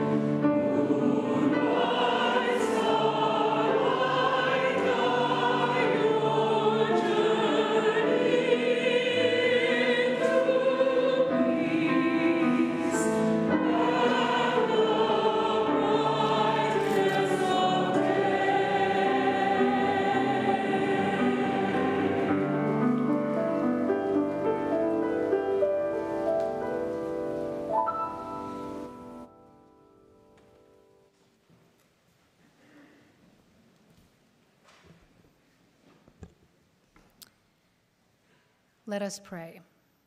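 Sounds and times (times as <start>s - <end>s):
congregation singing a hymn: 0.0s - 27.6s.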